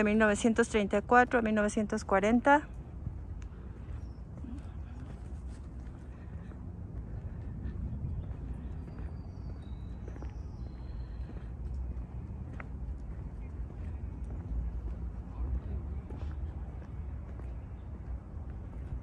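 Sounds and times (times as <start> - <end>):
footsteps on pavement: 0.0 - 19.0
wind on microphone: 2.8 - 10.3.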